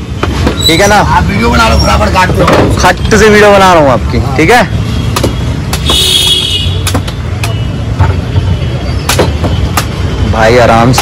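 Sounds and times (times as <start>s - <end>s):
machete chopping coconut: 5.1s - 6.0s.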